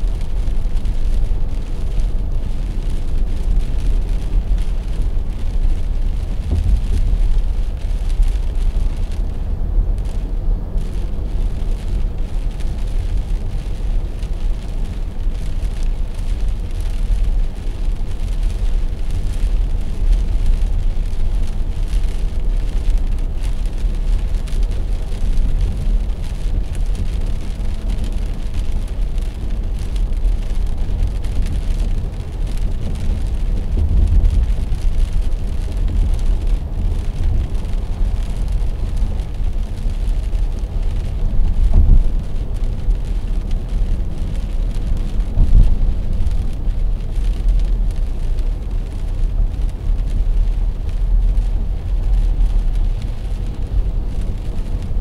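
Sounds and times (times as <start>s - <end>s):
car cabin low rumble: 0.0s - 55.0s
rain: 0.0s - 55.0s
tyres hissing on wet road: 0.0s - 55.0s.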